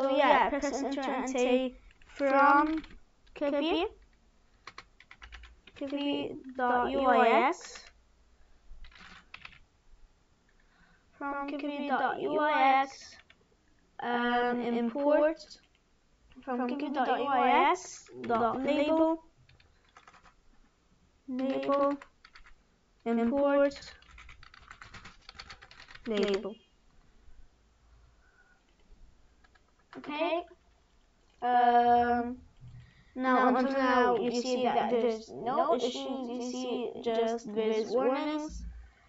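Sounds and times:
computer keyboard keystrokes: 4.0s - 6.0s, 8.8s - 9.6s, 18.3s - 20.4s, 21.4s - 22.6s, 24.0s - 26.4s, 29.4s - 30.1s.

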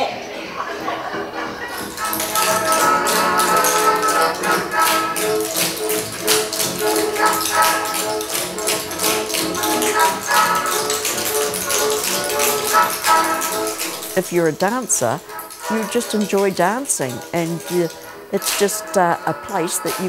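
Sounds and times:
lively dance music: 0.9s - 20.0s
tap shoes tapping: 1.8s - 20.0s.

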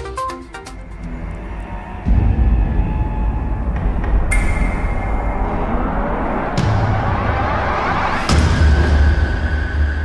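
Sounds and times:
deep low rumbling swell: 0.7s - 10.0s.

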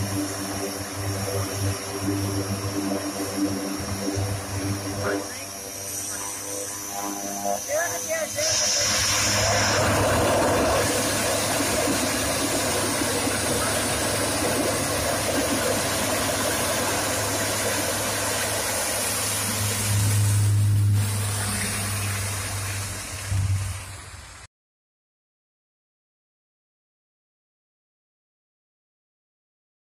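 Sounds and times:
turboprop engines droning: 0.0s - 24.5s.

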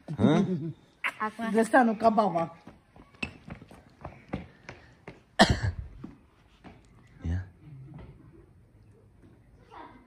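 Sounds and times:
faint footsteps: 2.5s - 7.2s
loud cough: 5.4s - 5.9s.

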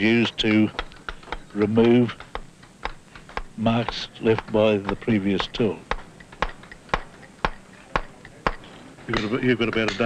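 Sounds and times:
mallet striking steel chisel: 0.8s - 10.0s.

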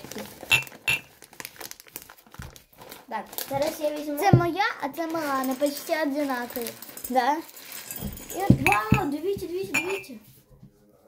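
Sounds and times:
plastic packaging crinkling: 0.0s - 9.2s.

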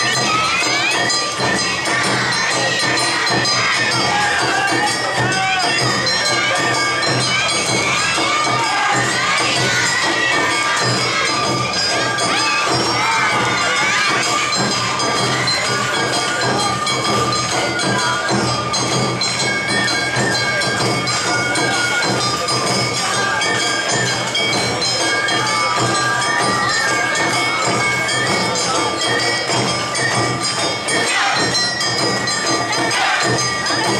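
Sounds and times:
crowd shouting and cheering: 0.0s - 33.9s.

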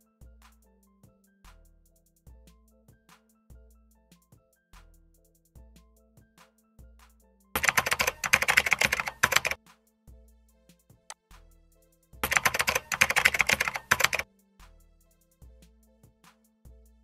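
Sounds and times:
quiet background music: 0.0s - 17.0s
rapid keyboard typing: 7.6s - 9.6s, 12.2s - 14.2s.

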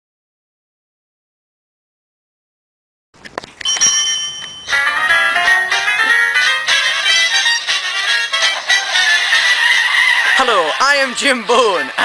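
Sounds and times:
bell-like ringing tone: 3.6s - 6.6s
theme tune melody: 4.6s - 11.1s.

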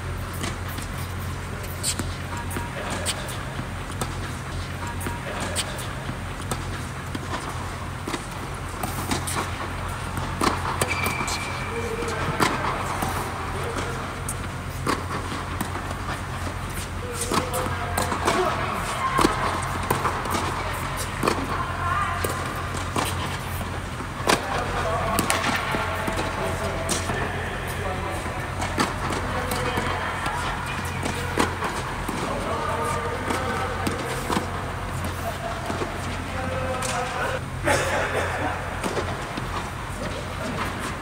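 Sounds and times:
steady low hum: 0.0s - 41.0s
balls bouncing on hard court: 0.1s - 37.3s
tennis balls struck with rackets: 0.1s - 37.3s.

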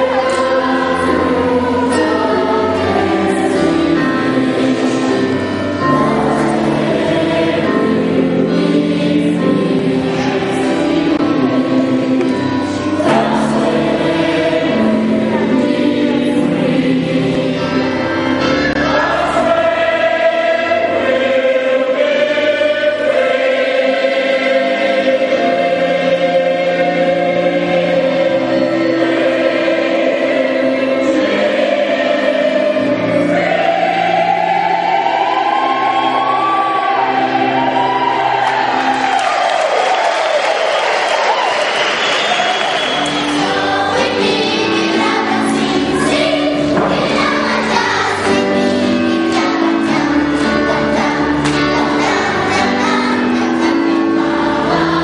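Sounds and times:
choir singing in parts: 0.0s - 55.0s.

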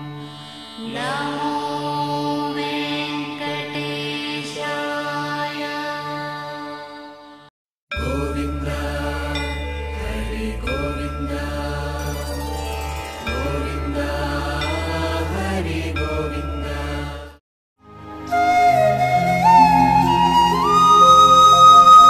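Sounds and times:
devotional chanting: 0.8s - 17.4s.

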